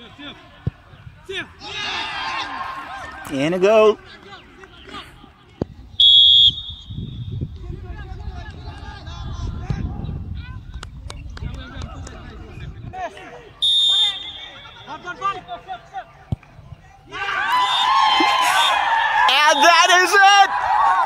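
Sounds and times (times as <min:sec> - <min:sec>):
referee's whistle blasts: 0:06.0 - 0:07.3, 0:13.6 - 0:15.7.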